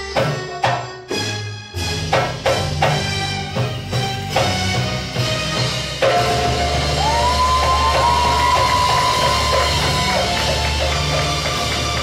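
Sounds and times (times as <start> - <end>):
hand drum percussion: 6.0 - 12.0.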